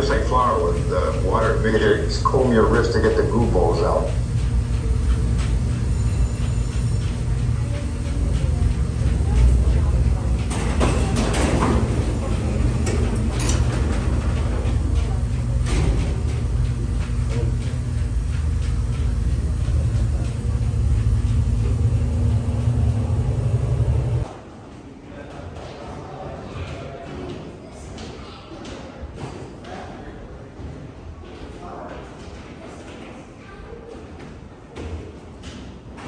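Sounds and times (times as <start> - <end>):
elevator car rumble: 0.0 - 24.3
knocks and clatters: 4.1 - 24.3.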